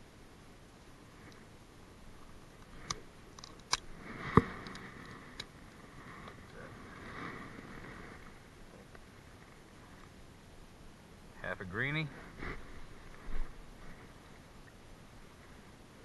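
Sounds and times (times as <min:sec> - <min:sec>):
crab shell cracking: 0:02.9 - 0:03.9.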